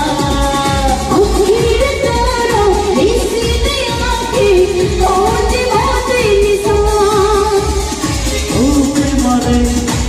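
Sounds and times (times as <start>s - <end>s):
backing track with low beat: 0.0s - 10.0s.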